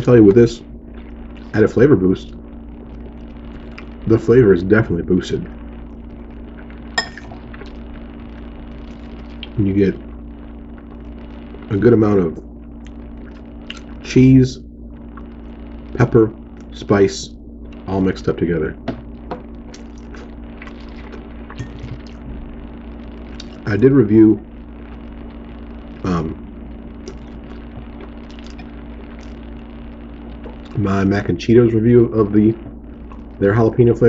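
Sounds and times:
steady low hum: 0.0 - 34.0
person chewing: 12.8 - 13.9, 19.7 - 22.2, 28.0 - 28.6.

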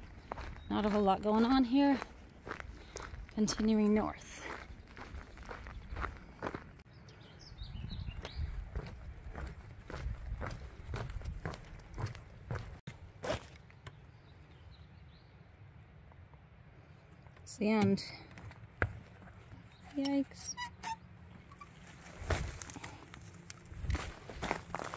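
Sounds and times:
footsteps on wooden boardwalk: 0.0 - 6.8, 8.1 - 13.6, 18.2 - 19.9, 22.1 - 24.9
footsteps on dirt trail: 0.0 - 6.9, 7.6 - 13.7, 17.9 - 19.9, 21.8 - 24.9.

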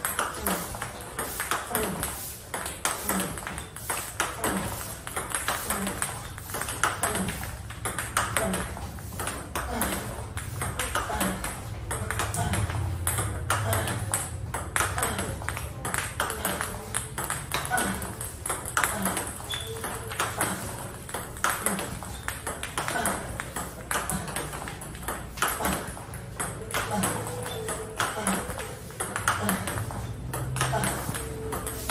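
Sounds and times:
table tennis balls clicking: 0.0 - 31.9.

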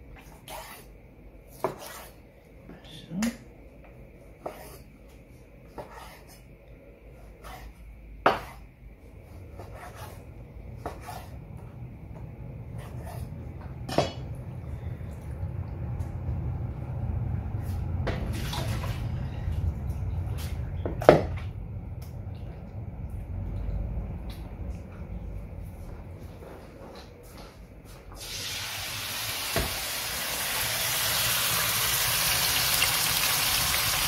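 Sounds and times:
low steady rumble: 8.9 - 26.7.

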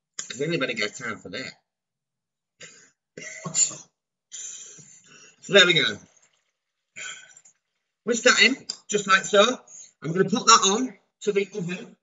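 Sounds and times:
man coughing: 2.6 - 3.8.

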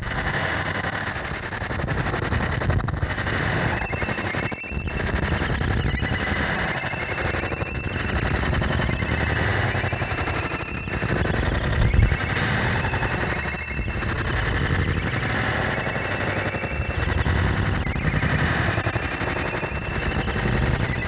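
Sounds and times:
distorted synthesizer noise: 0.0 - 21.0.

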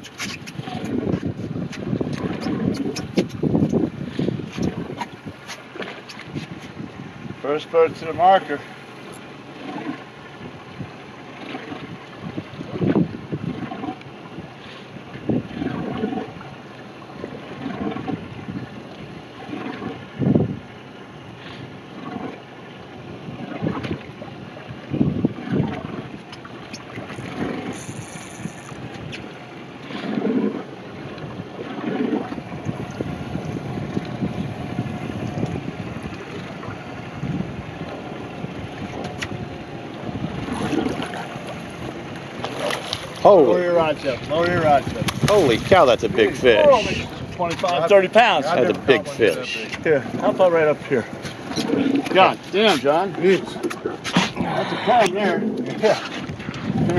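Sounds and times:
wind on microphone: 0.0 - 11.0, 11.7 - 16.5, 17.6 - 20.7, 23.1 - 56.9
water lapping against boat hull: 0.0 - 56.9.

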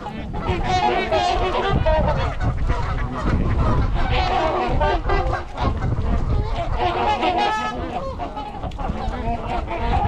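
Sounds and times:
swans and geese honking: 0.0 - 10.0.

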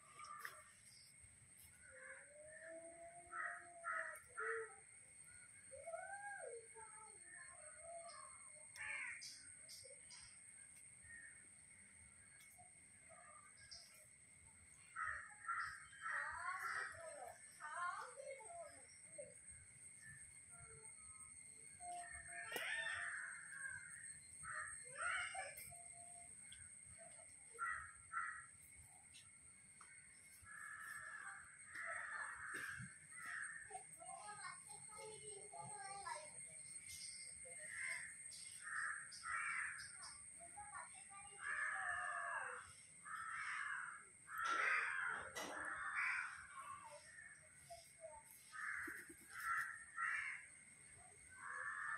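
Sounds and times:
crows cawing: 0.0 - 1.0, 1.6 - 2.3, 3.3 - 4.8, 8.7 - 10.3, 15.0 - 17.3, 22.0 - 25.5, 27.5 - 28.7, 29.8 - 33.8, 37.6 - 40.2, 41.0 - 50.7, 51.3 - 51.9.

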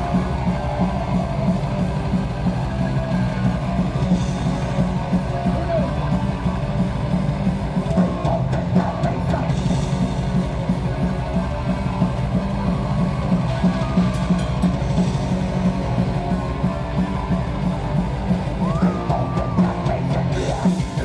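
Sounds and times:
heavy metal band playing live: 0.0 - 21.0.

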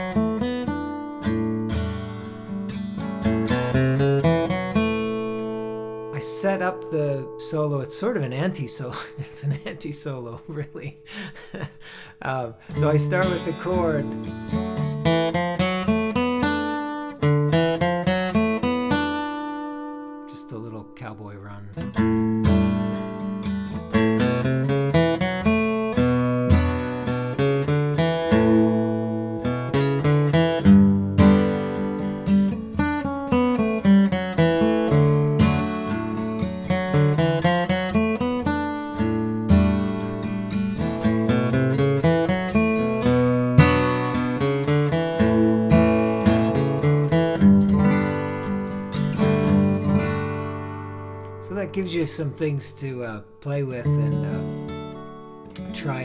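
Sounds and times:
fingerpicked acoustic guitar: 0.0 - 56.0.

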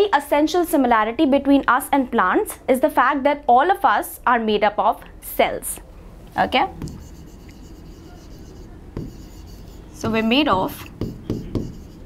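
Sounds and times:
marker scratching on a board: 6.8 - 12.0.

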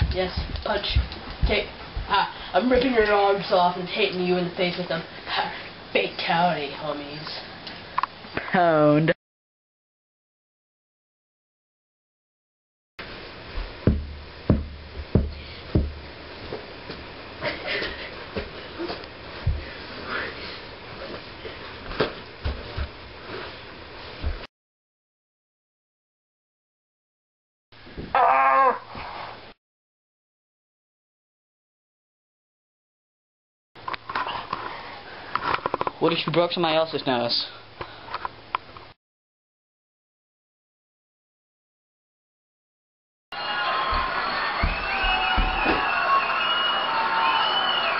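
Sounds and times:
punches thumping: 13.9 - 16.0.

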